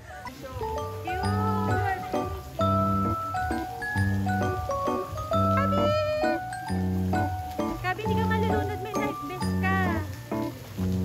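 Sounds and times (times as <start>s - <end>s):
pop music with bass line: 0.7s - 7.4s.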